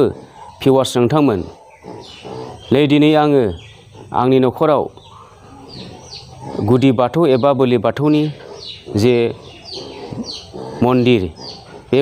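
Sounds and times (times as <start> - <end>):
birds chirping: 0.0 - 12.0
man speaking: 10.8 - 12.0.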